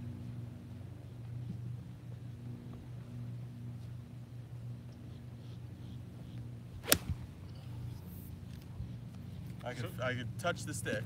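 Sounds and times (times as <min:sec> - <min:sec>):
golf club striking ball: 0:06.8 - 0:07.4.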